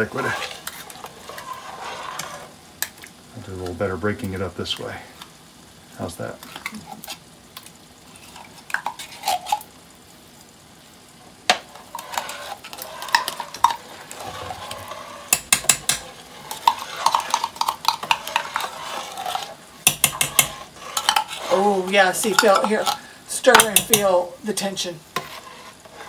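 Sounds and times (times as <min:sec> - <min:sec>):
spoons scraping in tin can: 0:00.0 - 0:02.6, 0:08.1 - 0:09.7, 0:11.6 - 0:26.0
spoon clinking against metal pot: 0:19.9 - 0:20.5.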